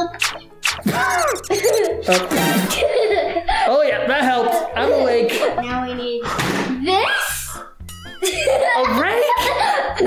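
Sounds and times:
spray bottle squirting: 0:00.0 - 0:02.8
background music: 0:00.0 - 0:10.0.

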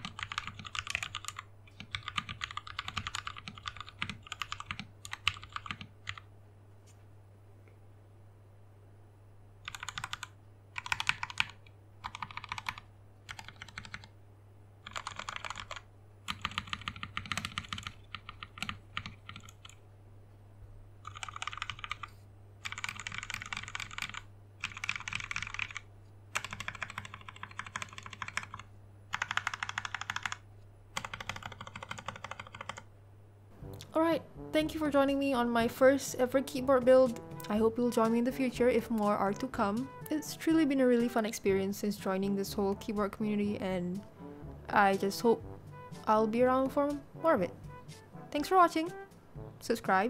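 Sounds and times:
mechanical keyboard typing: 0:00.0 - 0:06.3, 0:09.6 - 0:14.2, 0:14.8 - 0:19.8, 0:21.0 - 0:32.9.

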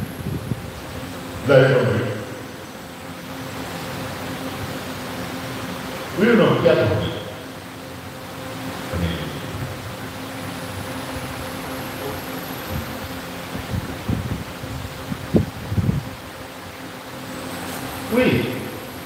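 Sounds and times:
electrical hum: 0:00.0 - 0:19.0
mechanical fan whirring: 0:00.0 - 0:19.0.

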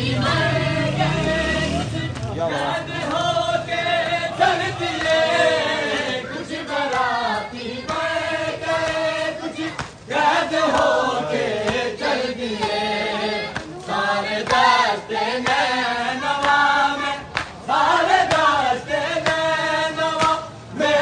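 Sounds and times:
men chanting a lament: 0:00.0 - 0:21.0.

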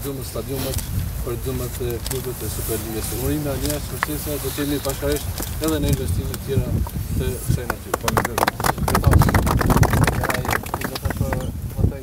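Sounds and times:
people clapping: 0:07.5 - 0:11.5.

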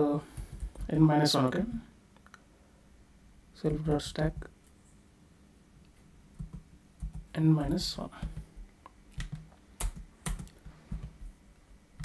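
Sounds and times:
keyboard keystrokes: 0:08.2 - 0:11.3.

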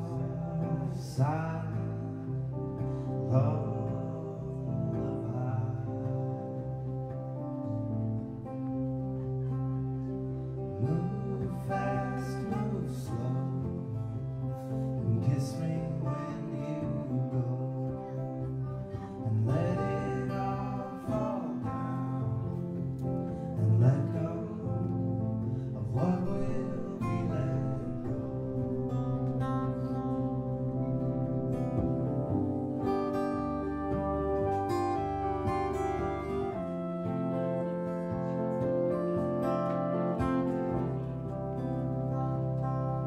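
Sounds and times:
man singing: 0:00.0 - 0:07.6, 0:10.6 - 0:30.8
acoustic guitar strumming: 0:00.0 - 0:43.0.

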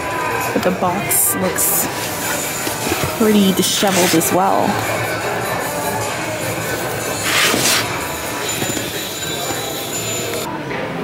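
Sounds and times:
store background noise: 0:00.0 - 0:11.0
cardboard box scraping on shelf: 0:07.2 - 0:07.9.

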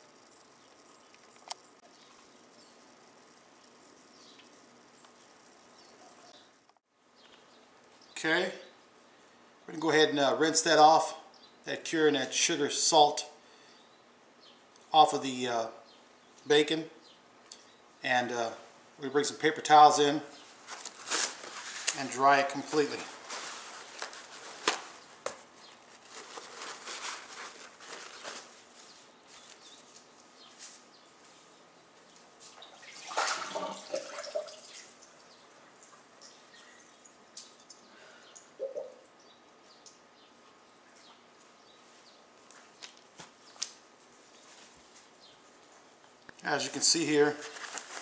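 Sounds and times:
paper towels rustling: 0:20.4 - 0:31.5, 0:46.8 - 0:48.0.

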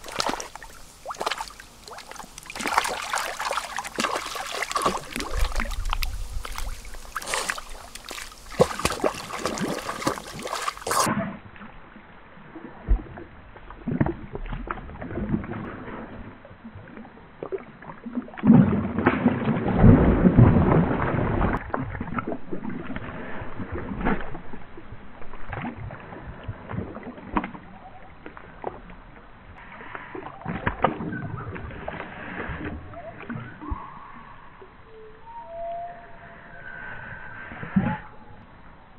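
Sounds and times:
dog swimming and splashing: 0:00.0 - 0:11.4.

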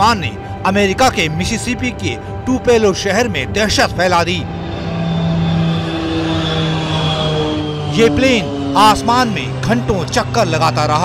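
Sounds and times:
propeller plane engine drone: 0:00.0 - 0:11.0.

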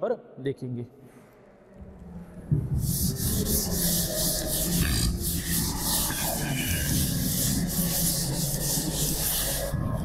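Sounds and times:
cloth wiping chalkboard: 0:02.6 - 0:10.0.

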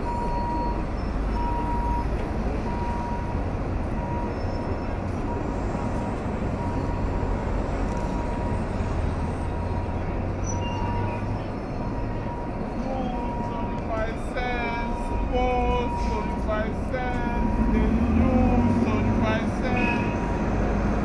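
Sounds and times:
crowd of passing people: 0:00.0 - 0:21.0
traffic engines rumbling: 0:00.0 - 0:21.0
faint beeping tone: 0:03.9 - 0:07.3, 0:07.9 - 0:19.0.

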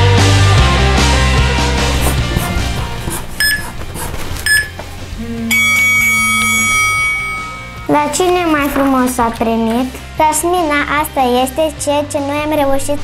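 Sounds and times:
rock music: 0:00.0 - 0:03.0
short electronic beeps: 0:03.4 - 0:03.7, 0:04.5 - 0:04.8, 0:05.5 - 0:08.2
long electronic tone: 0:04.5 - 0:08.1.

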